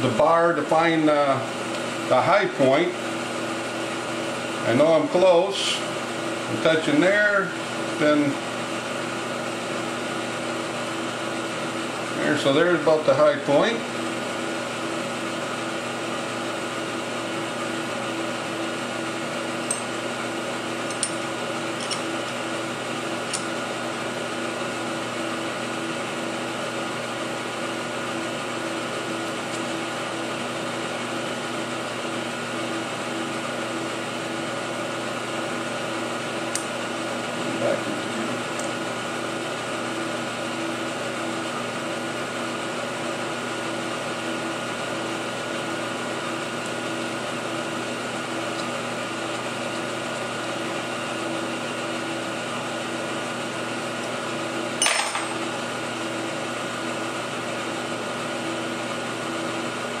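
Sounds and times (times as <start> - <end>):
machine-shop hum: 0.0 - 60.0.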